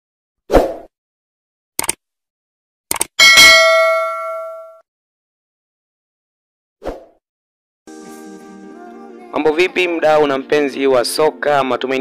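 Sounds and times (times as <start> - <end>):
quick clicks: 1.8 - 2.0, 2.9 - 3.1
bell ding: 3.2 - 4.8.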